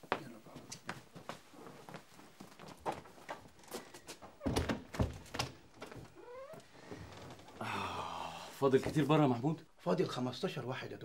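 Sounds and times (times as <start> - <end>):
wooden door thunking shut: 4.4 - 6.1.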